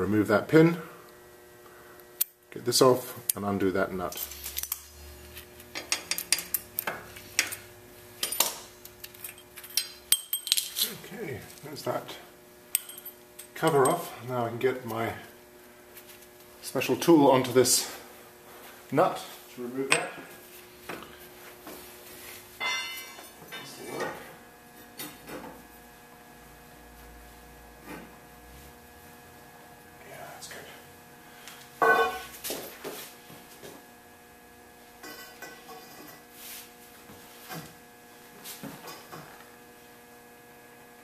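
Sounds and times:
metal tools clinking: 9.2 - 11.0, 22.6 - 23.8
ringing metal clank: 22.6 - 23.7, 31.8 - 32.3.

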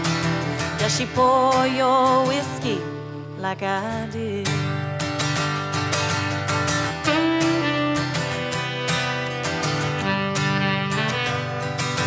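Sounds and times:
acoustic guitar strumming: 0.0 - 12.0
saxophone sustained notes: 6.9 - 12.0.

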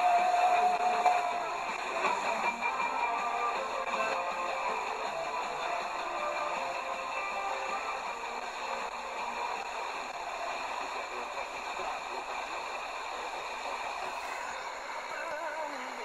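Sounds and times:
faint radio broadcast: 0.0 - 16.0
radio static hiss: 0.0 - 16.0
radio retuning noise burst: 7.4 - 16.0.

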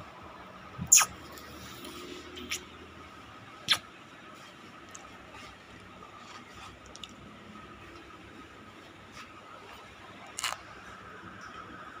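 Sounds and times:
background noise: 0.0 - 12.0
faint constant tone: 0.0 - 12.0.

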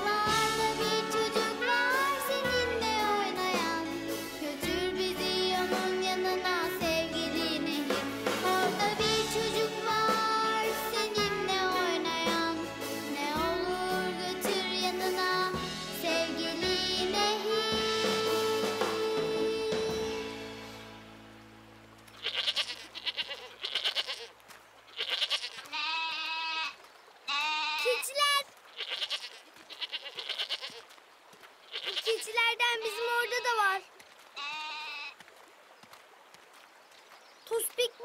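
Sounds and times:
children's song: 0.0 - 20.8
goats bleating: 22.1 - 31.0, 31.6 - 33.8, 34.4 - 35.2.

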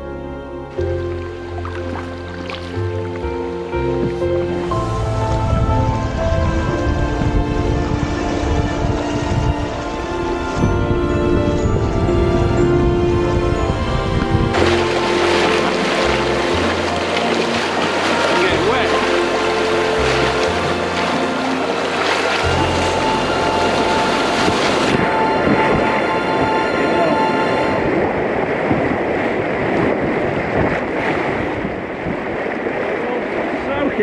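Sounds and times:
rushing white water: 0.0 - 34.0.

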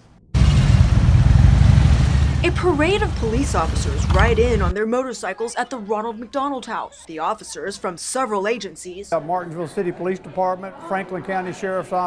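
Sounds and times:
motorcycle engines rumbling: 0.4 - 4.8.

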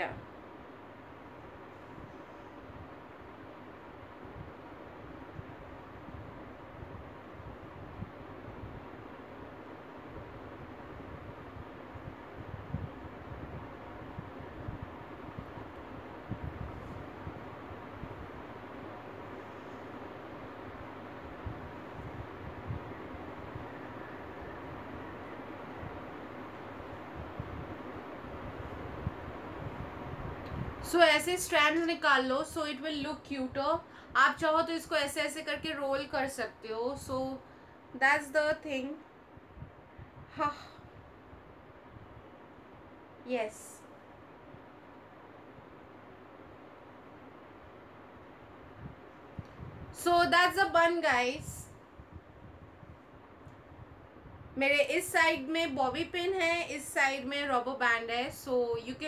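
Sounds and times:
background hiss: 0.0 - 59.0.

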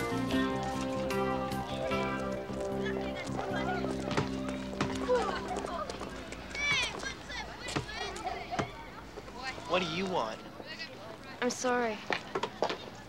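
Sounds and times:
music with sustained chords: 0.0 - 6.0
young voices chattering: 0.0 - 13.0.

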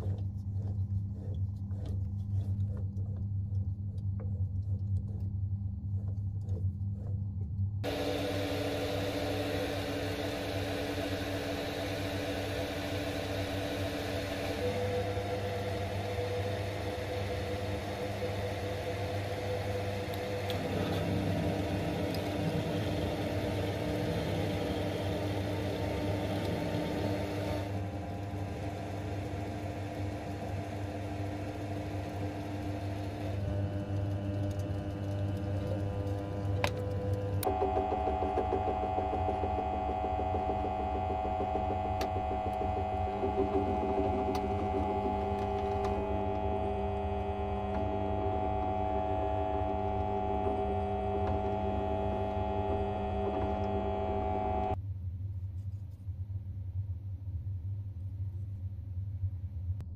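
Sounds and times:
lathe motor running: 0.0 - 3.2, 7.8 - 54.8
drill press motor running: 7.8 - 54.8.

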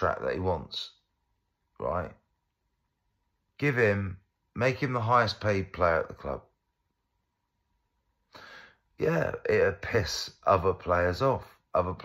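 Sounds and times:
man breathing: 8.2 - 9.0.

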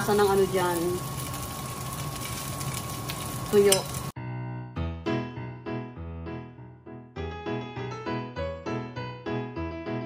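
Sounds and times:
rice sizzling in hot oil: 0.0 - 4.2.

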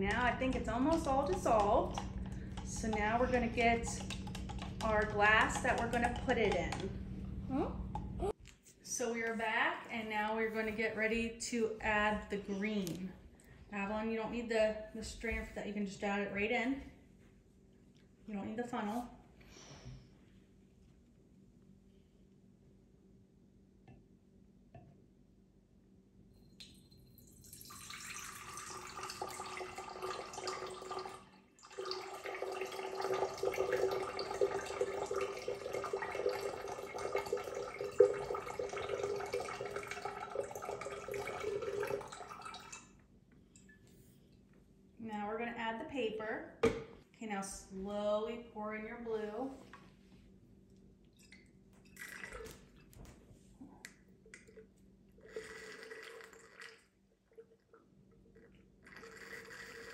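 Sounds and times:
liquid pouring into glass vase: 26.4 - 43.0, 51.1 - 53.0, 54.4 - 59.9.

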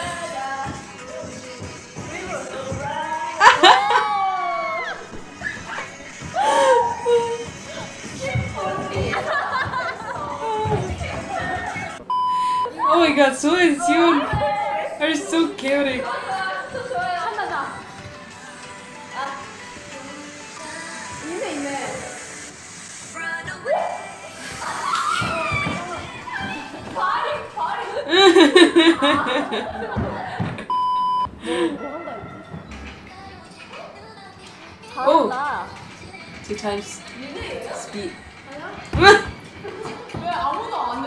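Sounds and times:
people talking: 8.2 - 12.0, 24.7 - 30.4
electronic censor bleep: 12.1 - 12.8, 30.7 - 31.3
test tone beep: 12.1 - 12.8, 30.7 - 31.3.

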